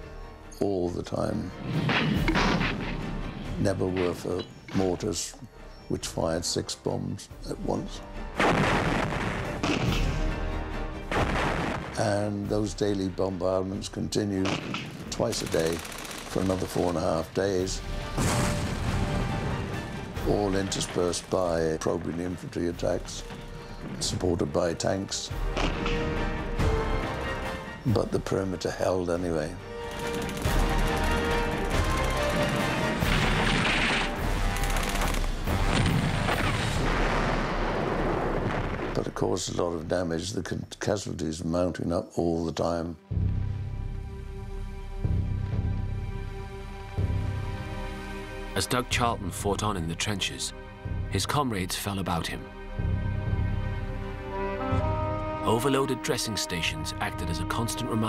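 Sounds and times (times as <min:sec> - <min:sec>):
background music: 0:00.0 - 0:58.0
sharp crack: 0:08.4 - 0:10.4, 0:14.4 - 0:17.4, 0:25.5 - 0:26.4
machine-gun fire: 0:14.5 - 0:16.9, 0:29.9 - 0:37.1
artillery blast rumbling: 0:35.5 - 0:39.1
music score: 0:53.0 - 0:58.0.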